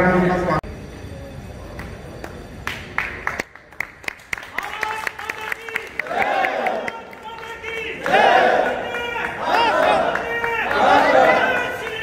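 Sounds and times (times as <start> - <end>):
scattered hand claps: 1.8 - 12.0.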